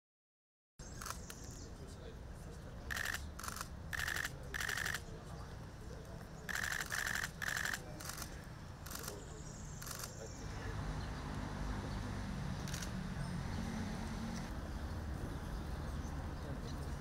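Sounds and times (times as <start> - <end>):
camera shutters clicking rapidly: 1.0 - 1.4, 2.9 - 5.0, 6.5 - 8.3, 8.9 - 9.2, 9.8 - 10.2, 12.6 - 13.0.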